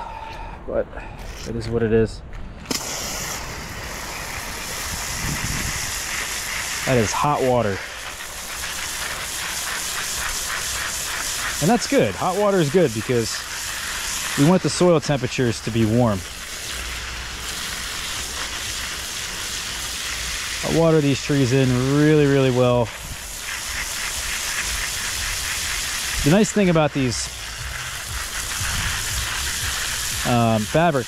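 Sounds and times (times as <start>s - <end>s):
garden hose spraying water: 2.7s - 31.0s.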